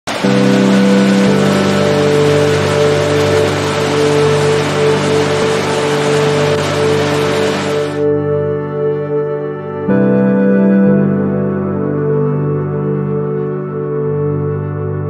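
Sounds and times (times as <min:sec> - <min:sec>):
rush of falling water: 0:00.1 - 0:08.0
sustained synth chords: 0:00.1 - 0:15.0.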